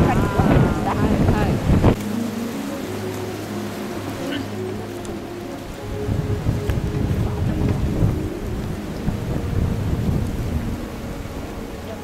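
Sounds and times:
wind gusting across microphone: 0.0 - 12.0.

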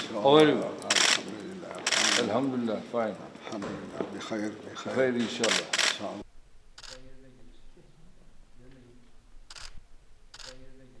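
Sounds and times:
camera shutters firing: 0.9 - 2.3, 5.4 - 6.1.

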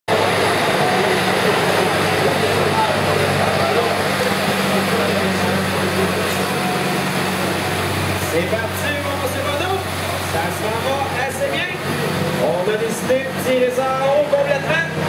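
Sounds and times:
background voices: 0.1 - 15.0
tractor diesel engine running: 0.1 - 15.0.

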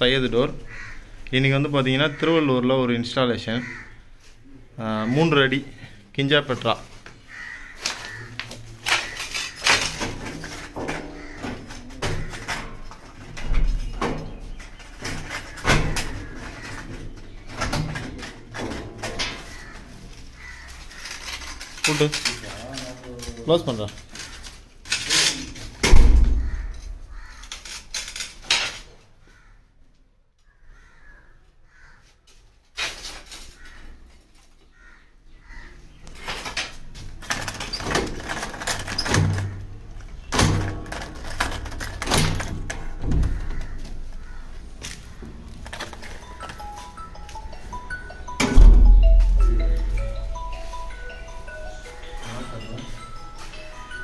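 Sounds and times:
steel door thud: 25.8 - 27.1, 48.4 - 49.4
background music with chiming notes: 46.2 - 54.0.

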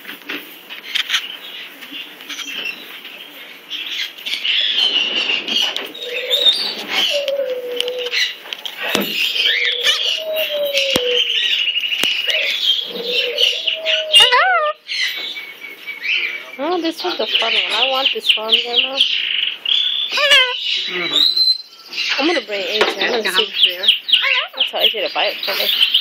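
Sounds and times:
cockatoo squawky chatter: 3.8 - 26.0.

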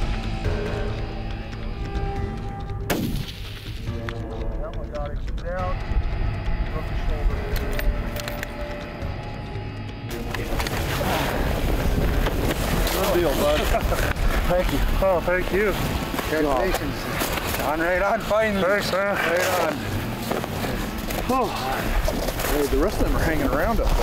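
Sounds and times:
rifle shot: 2.9 - 3.8
men's voices: 3.9 - 24.0
wind noise on microphone: 10.8 - 16.2.

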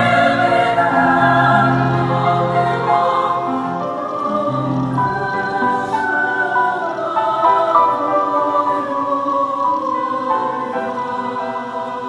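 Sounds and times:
choir singing chords: 0.0 - 12.0.

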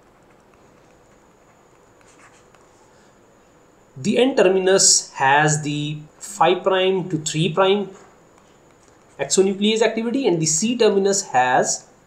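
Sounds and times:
stylus scratching and tapping: 0.0 - 3.0, 7.8 - 9.6.

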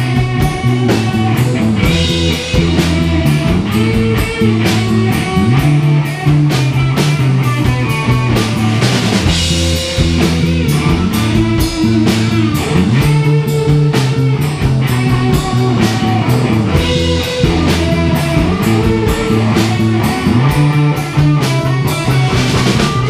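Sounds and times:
drum beat: 0.0 - 23.0
electric and acoustic guitars: 0.0 - 23.0.

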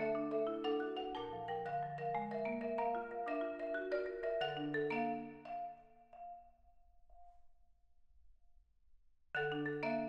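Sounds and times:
marimba notes ringing: 0.0 - 6.5, 9.4 - 10.0.

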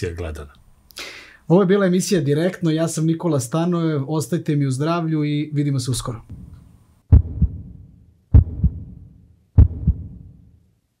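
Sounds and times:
heartbeat double thumps: 6.3 - 10.5.

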